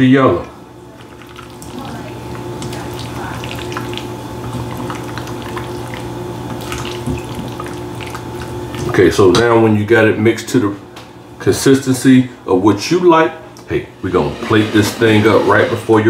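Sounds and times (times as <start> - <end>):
steady low hum: 0.0 - 16.0
spatula scraping metal bowl: 14.1 - 16.0.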